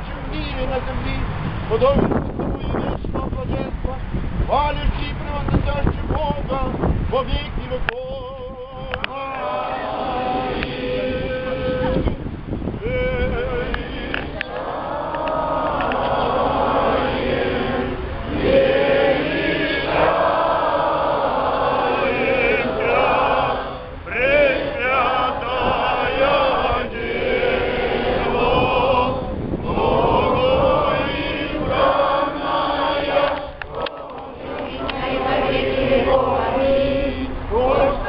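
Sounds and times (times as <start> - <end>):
crowd singing a chant: 8.8 - 12.2, 12.8 - 38.0.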